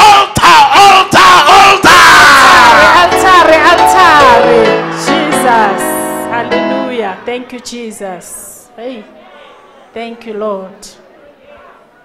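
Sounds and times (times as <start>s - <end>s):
man shouting prayer into microphone: 0.0s - 3.0s.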